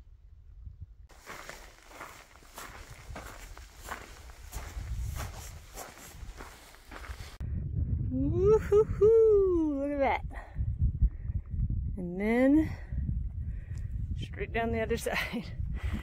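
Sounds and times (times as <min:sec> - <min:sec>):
footsteps on gravelly trail: 0:01.1 - 0:07.4
low rumble: 0:07.0 - 0:09.8.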